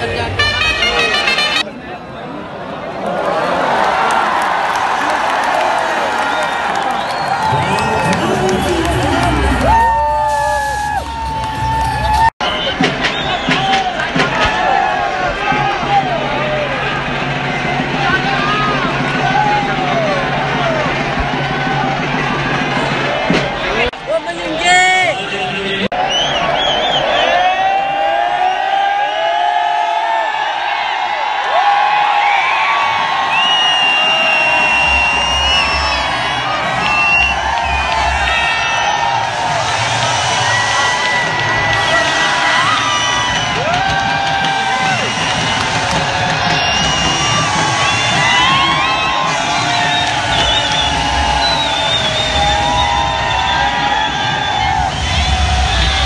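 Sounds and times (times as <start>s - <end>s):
stadium crowd cheering: 0.0s - 56.0s
music over loudspeakers: 7.4s - 10.0s.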